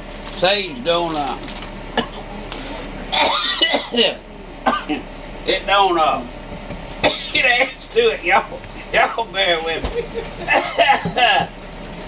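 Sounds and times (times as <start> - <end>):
man coughing: 2.0 - 2.3, 3.1 - 5.1, 7.0 - 7.8, 10.4 - 11.5.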